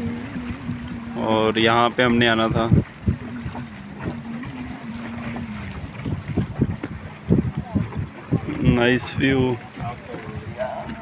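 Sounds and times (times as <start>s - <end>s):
boat motor humming: 0.0s - 11.0s
wind buffeting microphone: 0.0s - 11.0s.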